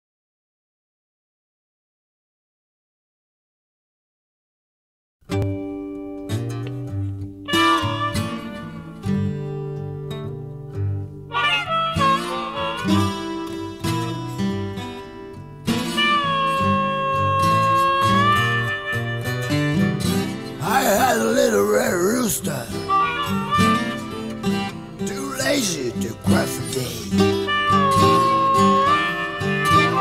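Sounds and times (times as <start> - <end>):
twelve-string acoustic guitar: 5.3 - 30.0
slide guitar: 5.4 - 30.0.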